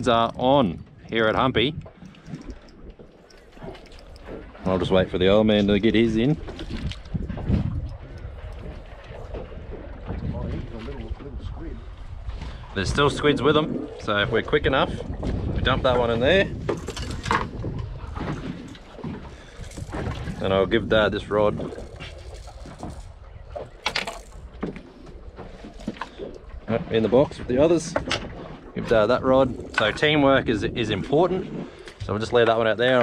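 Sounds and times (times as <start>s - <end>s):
wind rumbling on microphone: 0.0s - 33.0s.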